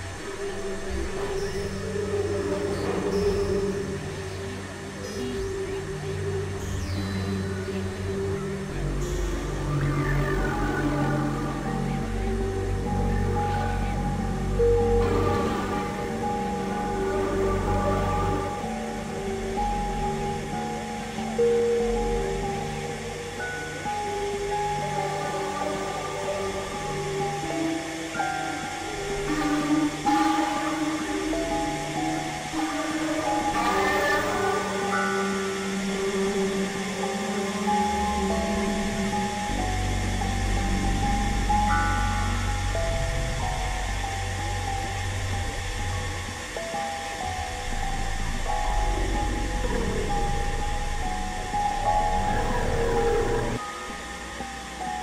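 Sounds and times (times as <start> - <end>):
experimental synthesizer music: 0.0 - 55.0
heavy low drone: 0.0 - 55.0
noisy synth sweeps: 0.0 - 55.0.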